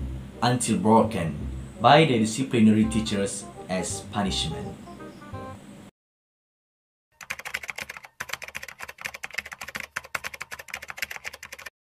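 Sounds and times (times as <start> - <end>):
keyboard typing clicks: 7.2 - 11.7.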